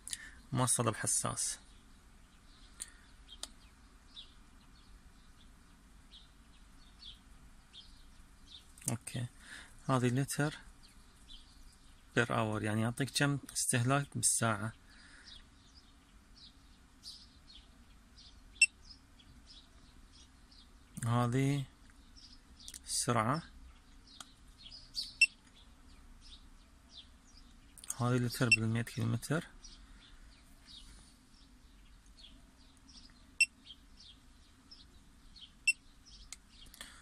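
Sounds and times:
small birds chirping: 0.0 - 37.0
sharp high bird chirp: 18.5 - 19.0, 24.1 - 25.4, 35.4 - 36.8.

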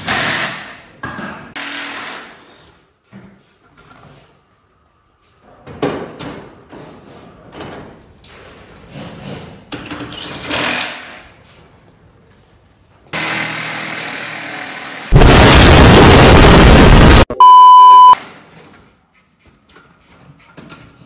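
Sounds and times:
sudden loud rush of noise: 15.1 - 17.3
explosion sound effect: 15.1 - 18.2.

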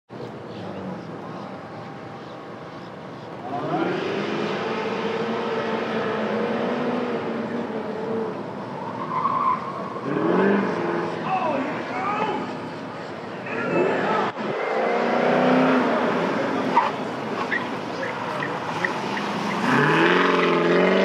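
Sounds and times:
car engine revving: 3.4 - 11.3, 13.5 - 21.0.

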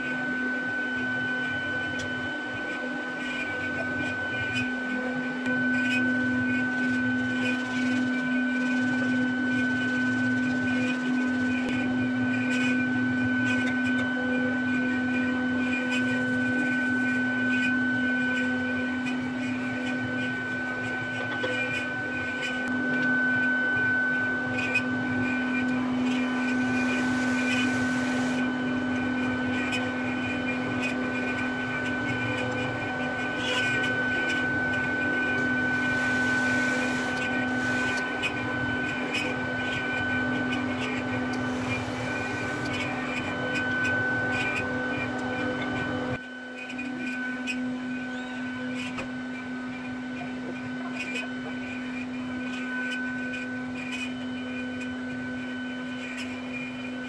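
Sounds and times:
workshop machine humming and whining: 0.0 - 57.0.

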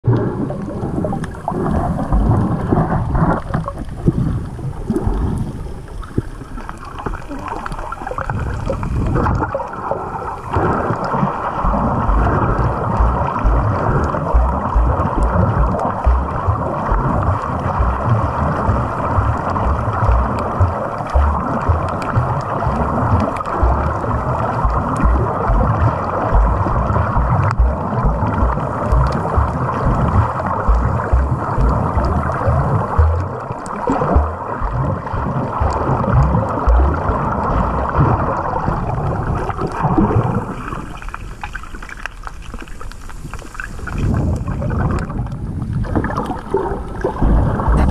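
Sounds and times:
low water thumps: 0.0 - 5.6, 10.4 - 40.7, 44.0 - 47.9
muffled underwater churning hiss: 0.1 - 47.9.

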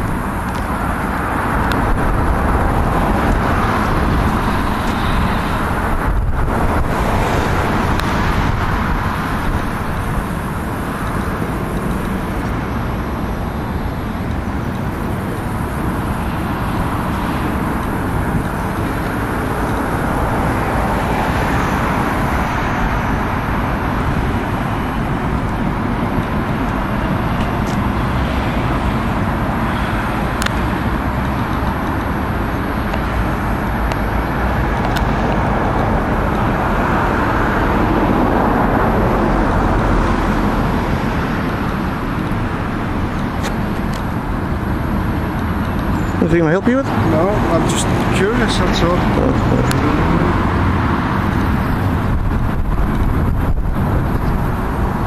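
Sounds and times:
road traffic noise: 0.0 - 55.0.

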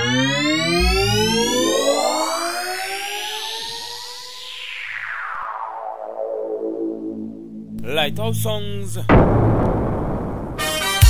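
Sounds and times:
synthesizer tones gliding upward: 0.0 - 10.0
deep bass hit: 7.7 - 11.0.

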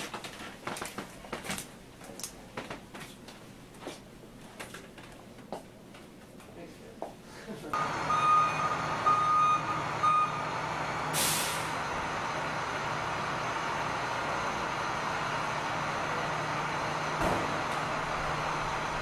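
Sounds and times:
reversing alarm beeping: 7.8 - 11.4
air hiss: 11.2 - 11.7
dull thump: 17.2 - 17.6.

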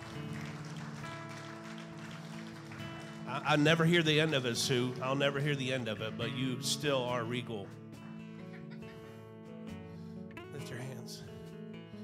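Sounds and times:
faint hand claps: 0.0 - 5.6.

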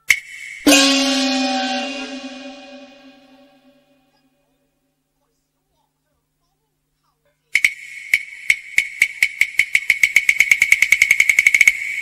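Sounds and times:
opera percussion roll: 0.6 - 3.7
ringing metal tone: 0.6 - 4.0.

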